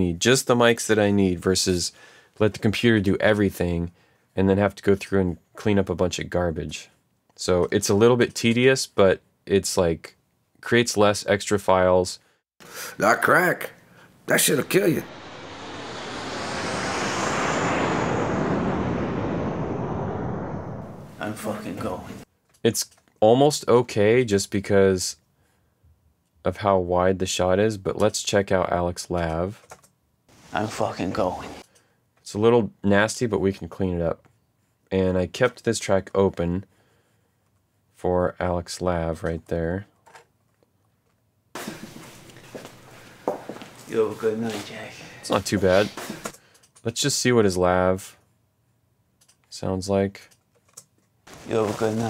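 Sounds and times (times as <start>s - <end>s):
steady mic hiss: 12.6s - 16.2s, 51.3s - 52.0s
broad rushing noise: 14.2s - 22.2s, 51.3s - 52.0s
high tone falling in pitch: 14.3s - 21.2s.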